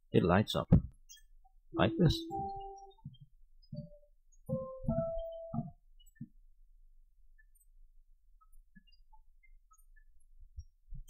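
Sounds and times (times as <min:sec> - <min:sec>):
soft piano note: 0:01.8 - 0:03.1, 0:03.7 - 0:05.8
piano keys knocking: 0:01.8 - 0:05.8.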